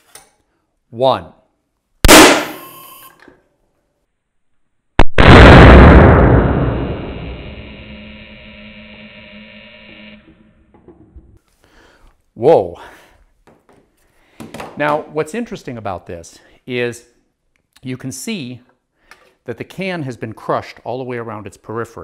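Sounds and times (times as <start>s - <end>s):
loud sharp bang: 2.1s - 2.7s, 5.0s - 8.3s.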